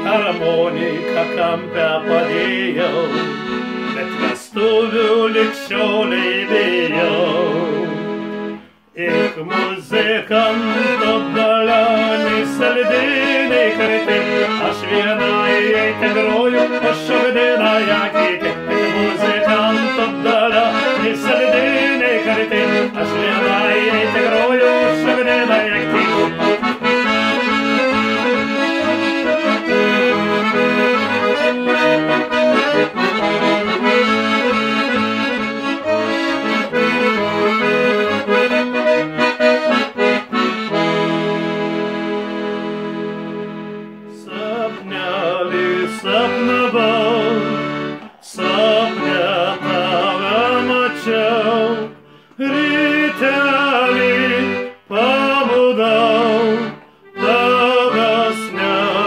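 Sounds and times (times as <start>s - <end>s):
man singing: 0.0s - 8.2s, 8.9s - 38.8s, 44.1s - 59.0s
piano accordion folk tune: 0.0s - 59.0s.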